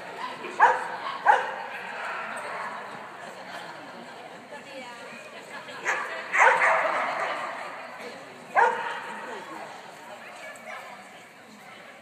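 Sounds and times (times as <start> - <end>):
dog barking in large hall: 0.1 - 3.0, 5.8 - 7.9, 8.5 - 9.5.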